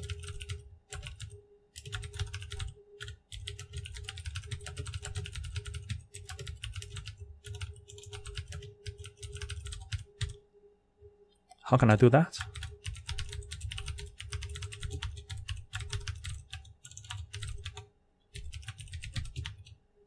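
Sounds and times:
typing on computer keyboard: 0:00.0 - 0:10.4, 0:12.4 - 0:19.8
faint steady hum: 0:00.0 - 0:20.0.

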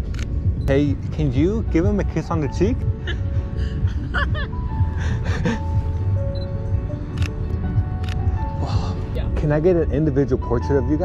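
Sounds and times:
background music: 0:00.0 - 0:11.0
woman laughing: 0:03.0 - 0:04.6.

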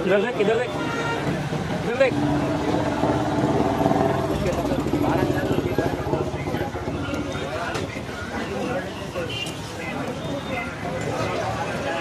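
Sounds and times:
people's voices: 0:00.0 - 0:12.0
vehicle engine rumble: 0:01.4 - 0:08.2.

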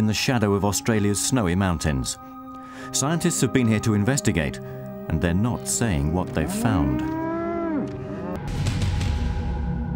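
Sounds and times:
cow mooing: 0:06.4 - 0:08.4.

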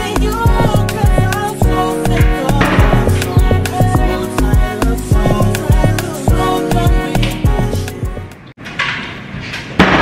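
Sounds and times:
background music: 0:00.0 - 0:08.5
locker door banging shut: 0:02.2 - 0:03.6.

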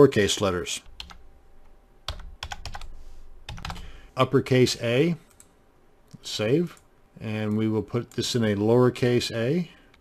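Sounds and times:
keyboard typing: 0:00.9 - 0:01.2, 0:02.1 - 0:02.9, 0:03.5 - 0:03.9.

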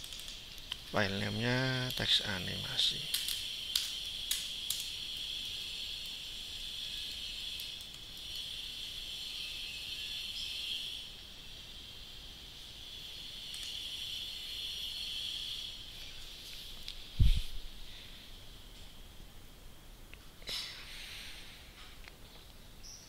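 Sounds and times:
high-pitched background hiss: 0:00.0 - 0:23.0.

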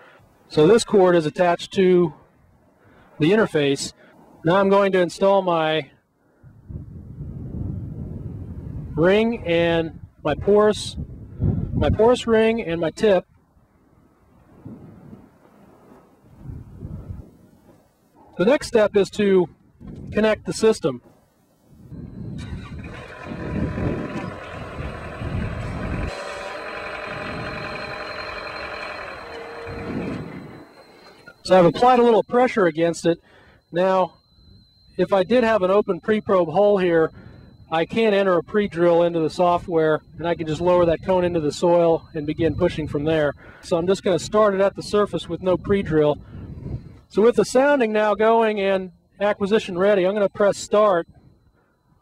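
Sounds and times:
wind buffeting microphone: 0:06.5 - 0:12.4, 0:14.4 - 0:17.6, 0:19.5 - 0:20.5, 0:21.7 - 0:28.1, 0:29.2 - 0:30.7, 0:44.0 - 0:47.1
short steady whine: 0:19.8 - 0:52.0
drilling rig engine and hydraulics: 0:21.9 - 0:52.0.

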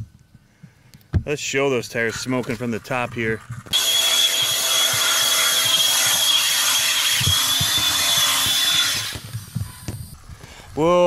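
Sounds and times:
tyres spinning on pavement: 0:01.8 - 0:09.9
electric motor high whine: 0:03.6 - 0:10.2.

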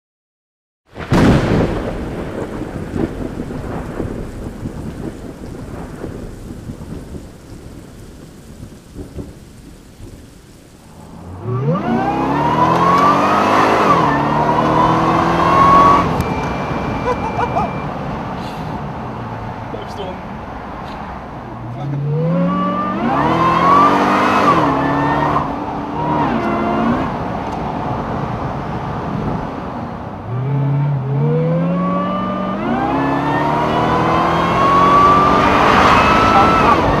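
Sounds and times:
loud rumble: 0:01.0 - 0:31.4
car engine accelerating hard: 0:10.9 - 0:18.9, 0:20.8 - 0:37.0.

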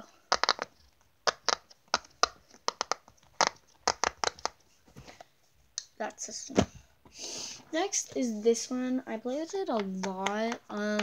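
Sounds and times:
fidget toy popping: 0:00.3 - 0:04.6.

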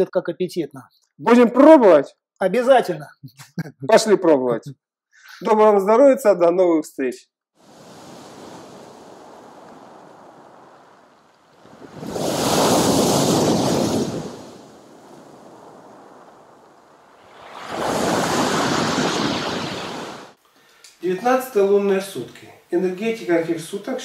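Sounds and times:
waves breaking on pebble beach: 0:07.6 - 0:20.4.

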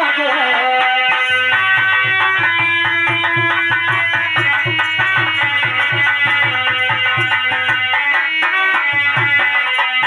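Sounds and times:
harmonium chords: 0:00.0 - 0:10.0
quick drum beat: 0:01.3 - 0:08.1.

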